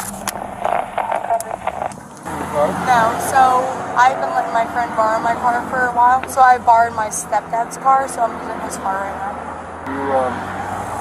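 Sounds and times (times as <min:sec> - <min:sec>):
person talking indistinctly: 0:00.5 - 0:09.2.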